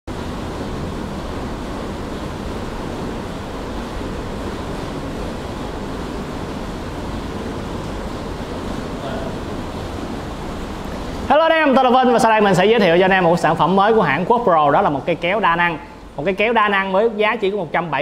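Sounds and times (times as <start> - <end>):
steady rushing noise: 0.1 - 18.0.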